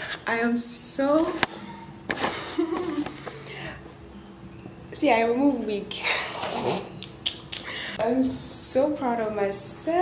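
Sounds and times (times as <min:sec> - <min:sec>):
woman laughing breathily: 0:02.2 - 0:03.8, 0:06.0 - 0:08.0.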